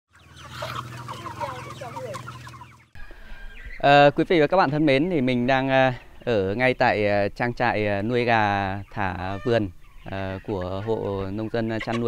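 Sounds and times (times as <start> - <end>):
chickens peeping and clucking: 0.1 - 12.0
man's voice: 3.8 - 12.0.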